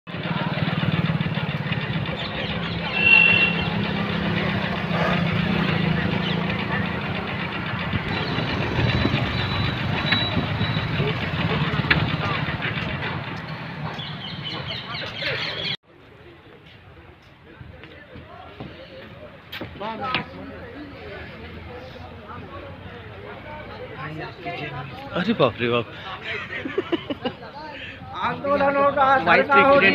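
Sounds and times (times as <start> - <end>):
motorcycle and car engines passing: 0.1 - 15.2
indistinct voices: 0.2 - 15.8.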